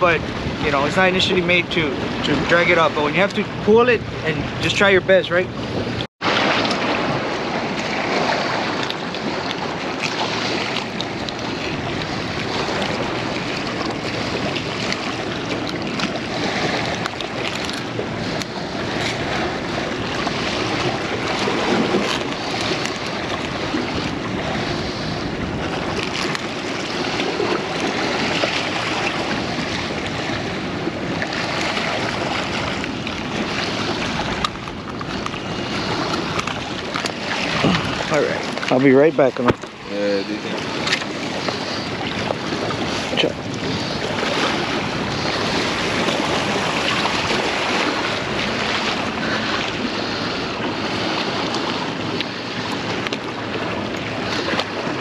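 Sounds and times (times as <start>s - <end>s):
sea surf washing against rocks: 0.0s - 55.0s
wind buffeting microphone: 0.0s - 55.0s.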